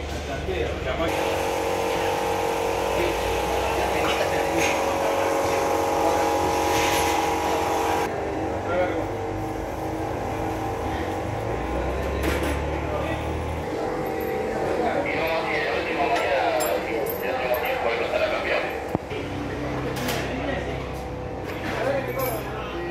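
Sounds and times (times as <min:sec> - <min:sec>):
steady mechanical hum: 0:00.0 - 0:22.9.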